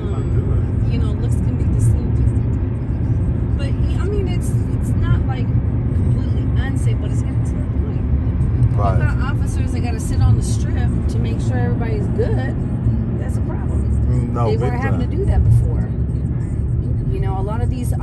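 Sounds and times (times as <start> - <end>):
car road rumble from inside: 0.0 - 18.0
faint indistinct talk: 8.7 - 9.0, 13.2 - 17.2.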